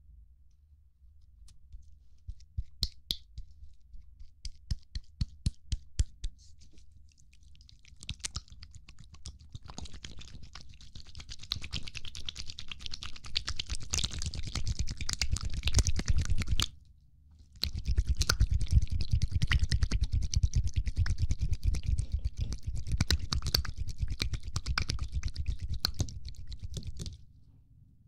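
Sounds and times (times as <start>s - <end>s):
rapid clicking and scratching: 6.6s - 16.7s, 17.6s - 27.2s.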